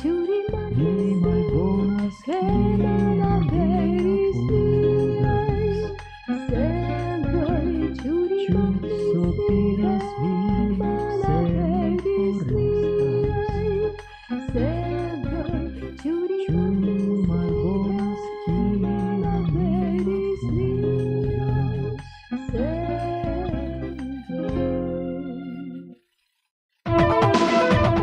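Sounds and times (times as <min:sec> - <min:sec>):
rhythmic instrumental accompaniment: 0:00.0 - 0:25.6, 0:26.9 - 0:28.0
vocal duo singing: 0:00.0 - 0:25.9.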